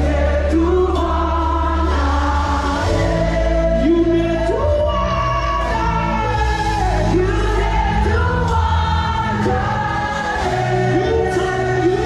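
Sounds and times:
gospel band playing: 0:00.0 - 0:12.0.

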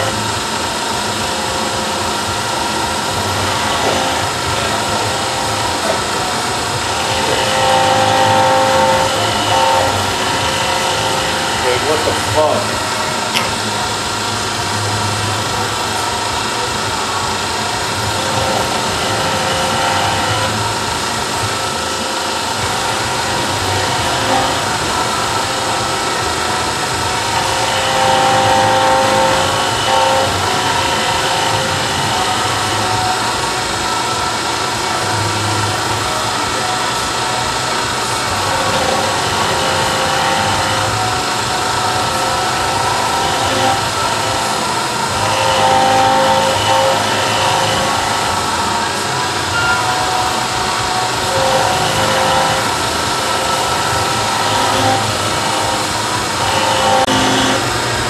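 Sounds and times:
milling machine cutter whine: 0:00.0 - 0:58.0.

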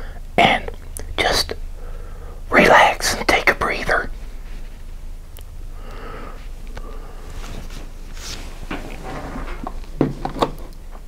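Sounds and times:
faint steady hum: 0:00.0 - 0:11.0
whisper-like mouth sounds: 0:00.4 - 0:01.6, 0:02.5 - 0:04.1.

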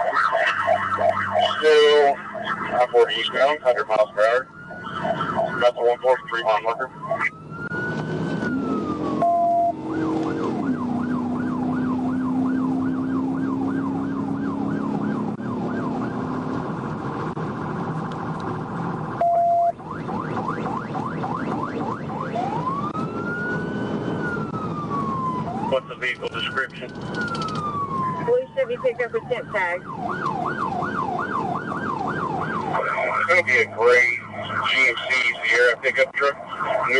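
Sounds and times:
police siren wailing and yelping: 0:00.0 - 0:16.4, 0:19.0 - 0:36.9
car engine and road noise: 0:00.0 - 0:36.9
short siren beep: 0:09.2 - 0:09.8, 0:19.2 - 0:19.8.

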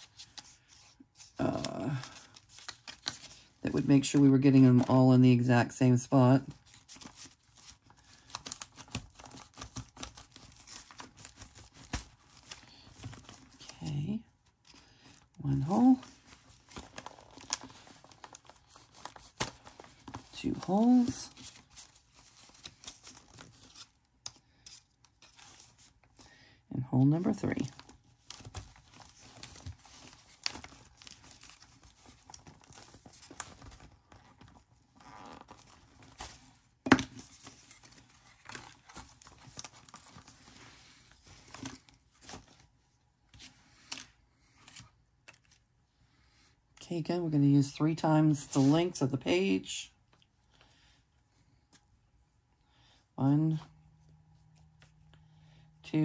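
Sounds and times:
paper rustling and crinkling: 0:00.0 - 0:26.3, 0:27.2 - 0:45.8, 0:48.3 - 0:50.2.

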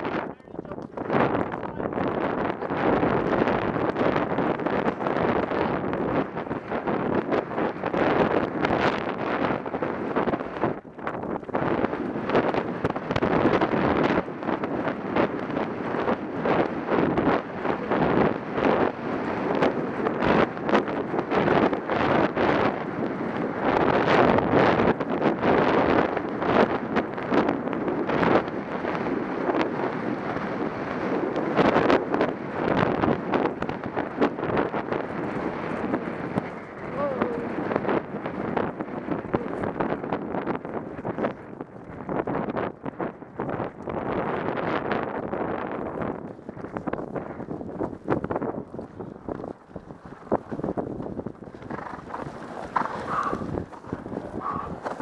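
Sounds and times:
wind buffeting microphone: 0:00.0 - 0:55.0
horse hooves and tack thudding: 0:02.2 - 0:22.8, 0:33.4 - 0:55.0.

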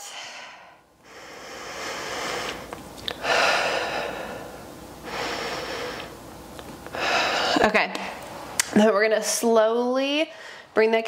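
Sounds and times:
woman breathing slowly: 0:00.0 - 0:06.2, 0:06.9 - 0:07.7, 0:10.3 - 0:10.8.

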